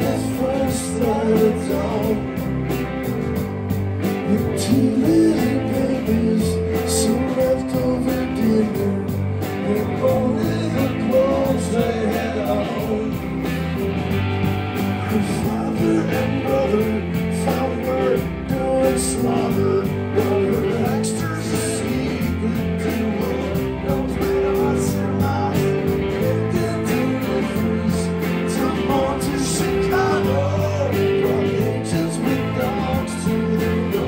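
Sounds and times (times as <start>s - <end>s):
bass guitar: 0.0s - 34.0s
drum kit: 0.0s - 34.0s
electric guitars: 0.0s - 34.0s.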